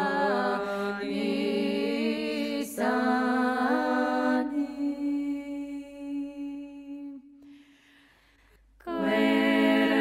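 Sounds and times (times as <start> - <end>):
a cappella choir singing: 0.0 - 7.4, 8.8 - 10.0.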